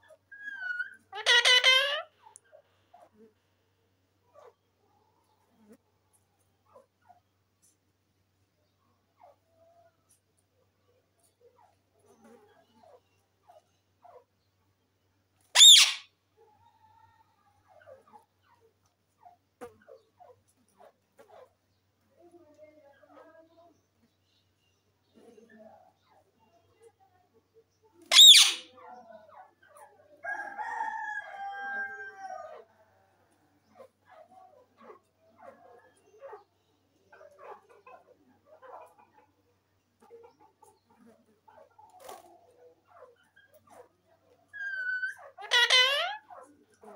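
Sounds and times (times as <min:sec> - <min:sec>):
parakeet drawn-out call: 0:00.4 - 0:02.1, 0:15.6 - 0:16.1, 0:28.1 - 0:28.7, 0:44.6 - 0:46.2
parakeet screeching: 0:00.4 - 0:02.1, 0:15.6 - 0:16.1, 0:28.1 - 0:28.7, 0:44.6 - 0:46.2
soft bird chattering: 0:15.6 - 0:16.1, 0:28.1 - 0:28.8, 0:44.6 - 0:46.3.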